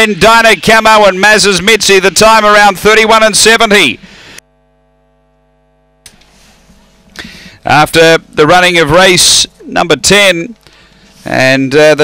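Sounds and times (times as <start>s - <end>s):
electrical mains hum: 3.7s - 11.2s.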